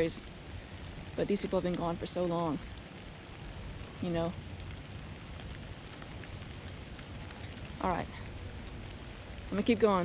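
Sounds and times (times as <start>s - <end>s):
low unsteady rumble: 0.0s - 10.0s
faint ticks: 2.6s - 9.7s.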